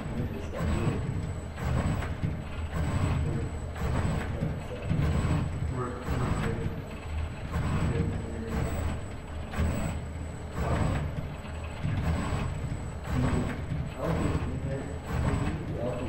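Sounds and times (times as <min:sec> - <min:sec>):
robot arm motors whirring: 0:00.0 - 0:16.0.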